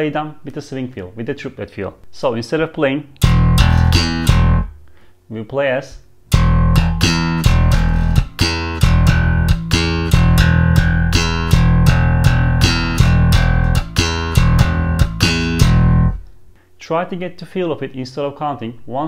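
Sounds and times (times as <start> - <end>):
slap bass guitar line: 3.2 - 4.8, 6.3 - 16.3.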